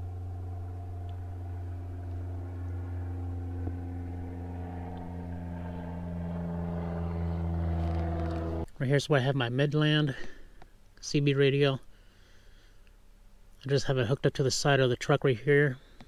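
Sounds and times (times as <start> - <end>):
truck engine idling: 0.0 - 8.6.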